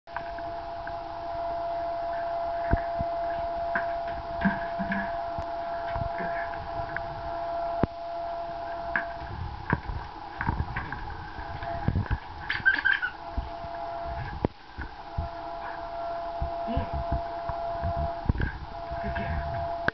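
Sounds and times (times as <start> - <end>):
steady high-pitched hum: 0.1 - 19.9.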